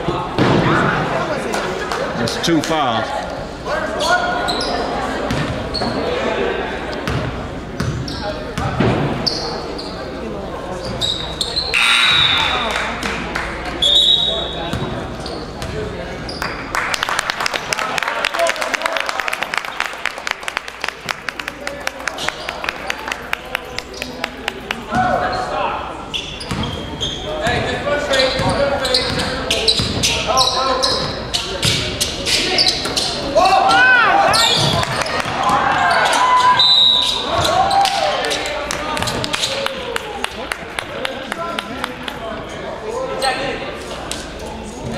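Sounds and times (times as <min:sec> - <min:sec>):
voices echoing in gym: 0:00.0 - 0:44.9
short high squeaks: 0:11.0 - 0:12.8.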